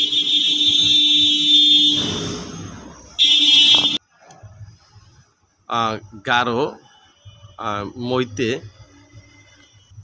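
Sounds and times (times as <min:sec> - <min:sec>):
loud electric buzzer: 0:00.0 - 0:04.0.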